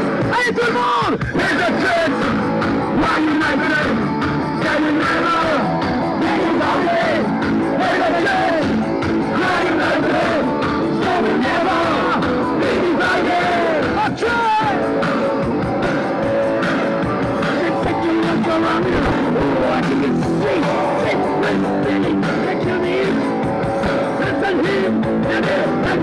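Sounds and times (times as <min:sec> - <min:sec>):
live punk rock band playing: 0:00.0 - 0:26.0.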